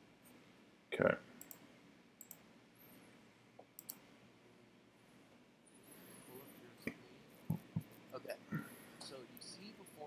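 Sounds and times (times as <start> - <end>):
computer mouse clicks: 1.4 - 1.6, 2.2 - 2.5, 3.6 - 4.0.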